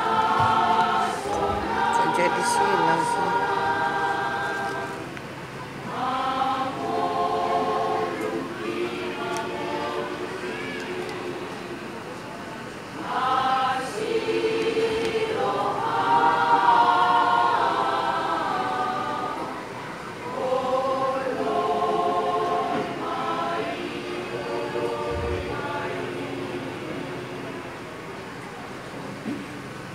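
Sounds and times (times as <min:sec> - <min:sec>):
choir singing a hymn: 0:00.0 - 0:29.9.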